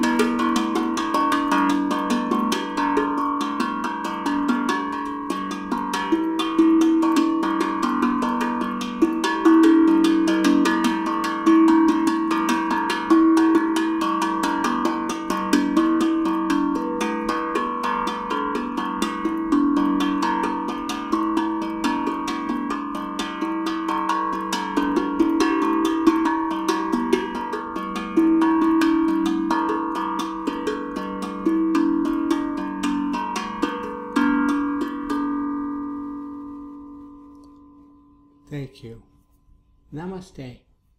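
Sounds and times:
steel tongue drum notes: 0.0s - 40.6s.

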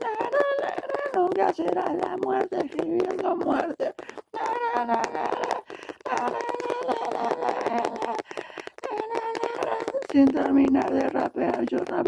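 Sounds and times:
person singing wordless melody: 0.0s - 12.0s.

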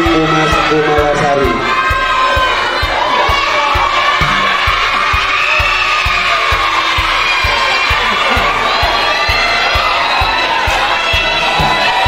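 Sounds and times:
children cheering and shouting: 0.0s - 12.0s
music with steady beat: 0.0s - 12.0s.

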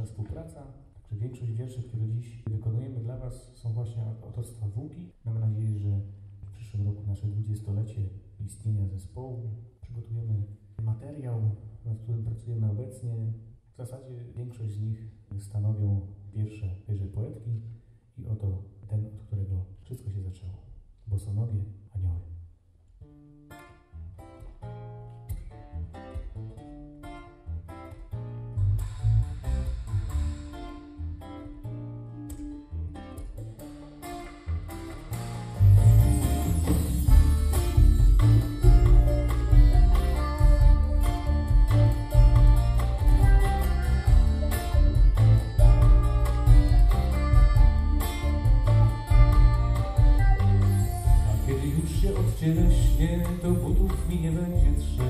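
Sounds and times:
acoustic guitar picking: 23.1s - 55.0s
deep bass: 27.5s - 33.5s, 34.5s - 55.0s
folk band playing: 33.2s - 55.0s
accordion: 34.0s - 55.0s.

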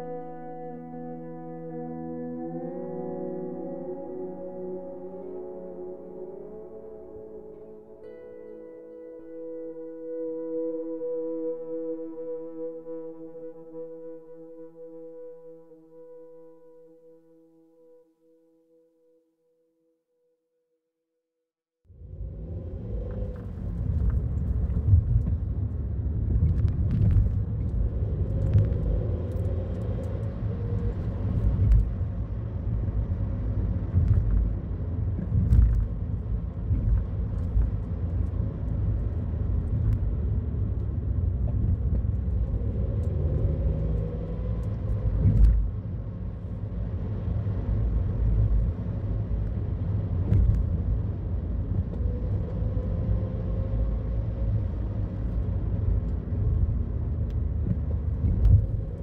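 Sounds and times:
car engine and tyres rumbling: 21.9s - 59.0s.

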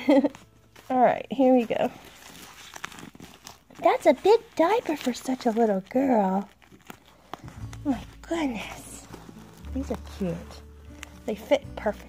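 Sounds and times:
diaper rustling and crinkling: 0.0s - 12.0s.

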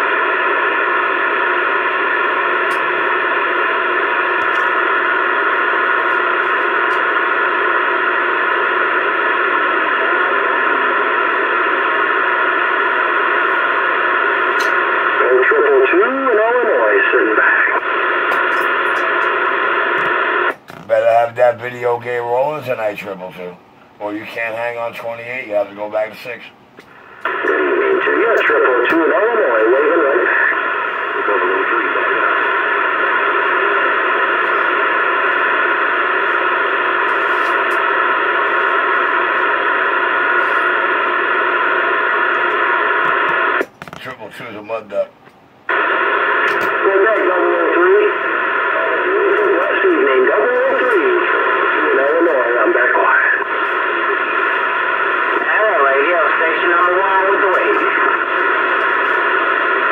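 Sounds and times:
garbled radio voices: 0.0s - 59.9s
radio static: 0.0s - 59.9s.

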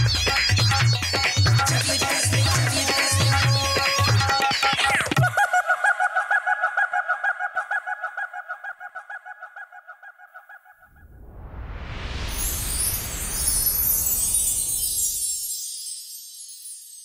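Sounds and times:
falling sweep: 10.9s - 15.6s
rising whoosh: 10.9s - 15.7s.

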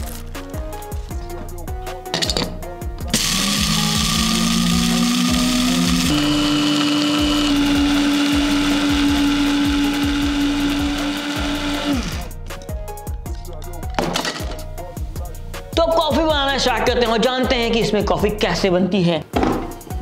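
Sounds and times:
background music with a beat: 0.0s - 20.0s
electric coffee grinder running: 3.1s - 12.3s.

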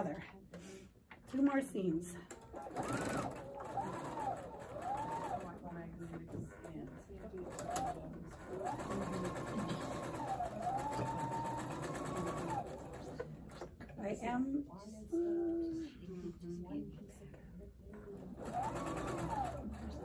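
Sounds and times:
sewing machine motor whine: 2.3s - 5.7s, 7.3s - 13.2s, 18.3s - 20.0s.

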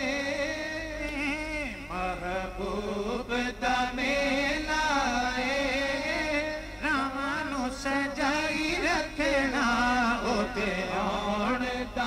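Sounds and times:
men singing through microphones: 0.0s - 12.0s.

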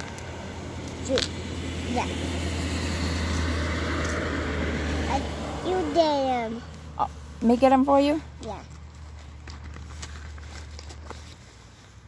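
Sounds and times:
motor vehicle engine running: 0.0s - 11.9s.

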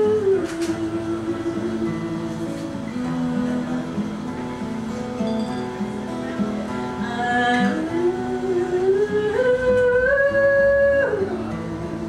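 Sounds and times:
acoustic guitar strummed and picked: 0.0s - 12.0s.

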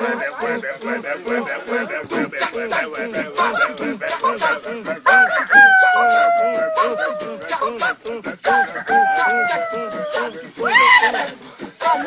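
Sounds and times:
men chanting: 0.0s - 12.0s
man imitating rooster crow: 5.0s - 7.7s, 8.4s - 12.0s.

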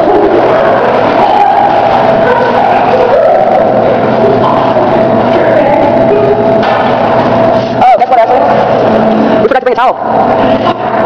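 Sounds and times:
loud steady hum: 0.0s - 11.0s.

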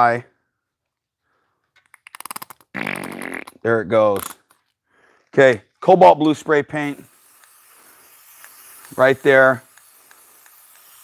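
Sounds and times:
squeeze bottle sputtering: 2.2s - 3.6s, 6.8s - 11.0s.

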